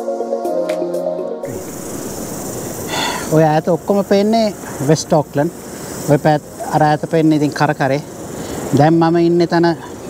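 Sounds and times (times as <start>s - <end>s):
background music: 0.0s - 3.8s.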